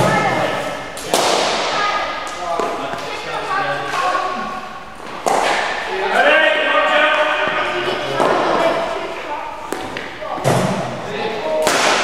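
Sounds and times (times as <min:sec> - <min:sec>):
sharp knocks echoing in hall: 0:00.0 - 0:03.0, 0:05.0 - 0:06.0, 0:09.6 - 0:12.0.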